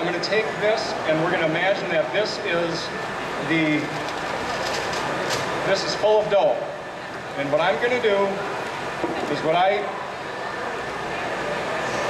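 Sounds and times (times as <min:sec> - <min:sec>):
outdoor background hum: 0:00.0 - 0:12.0.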